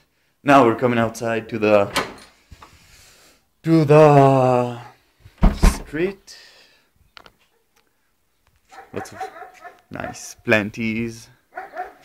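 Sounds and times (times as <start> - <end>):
dog barking: 8.7 - 10.2, 11.5 - 12.0.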